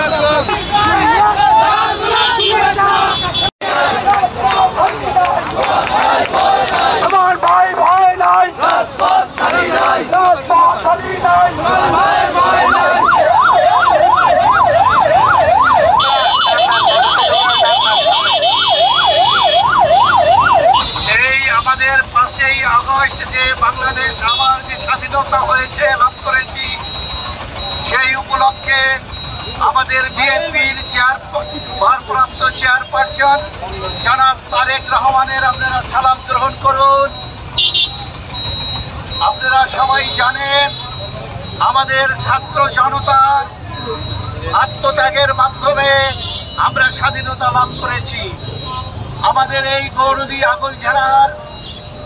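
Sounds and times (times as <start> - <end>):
people shouting: 0.0 - 14.5
man speaking through a megaphone: 0.0 - 27.0, 27.6 - 37.8, 39.0 - 52.0
electronic siren yelping: 11.9 - 21.4, 23.6 - 52.0.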